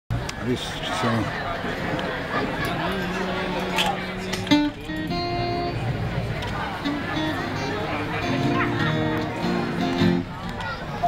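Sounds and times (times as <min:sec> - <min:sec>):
acoustic guitar chord ringing: 0:02.9 - 0:06.1, 0:06.8 - 0:10.3.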